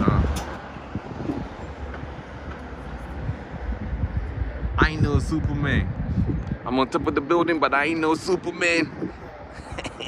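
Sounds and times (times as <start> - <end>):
low rumble of city ambience: 0.0 - 10.0.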